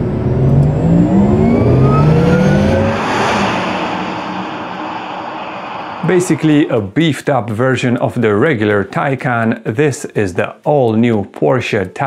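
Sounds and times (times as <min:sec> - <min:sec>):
electric car motor hum: 0:00.0 - 0:03.3
road and tyre noise: 0:00.0 - 0:06.9.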